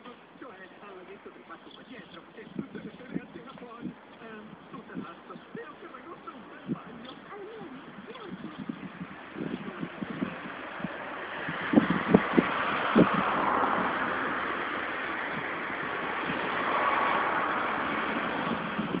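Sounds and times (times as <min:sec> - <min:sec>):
motor traffic noise: 0:00.0 - 0:19.0.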